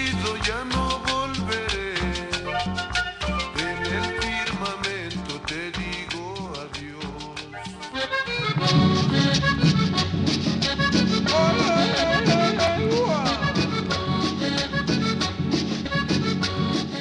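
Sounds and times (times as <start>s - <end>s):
latin dance music: 0.0s - 17.0s.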